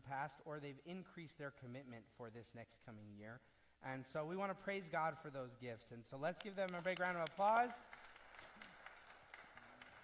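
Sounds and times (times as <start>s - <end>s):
faint applause: 7.3s - 10.0s.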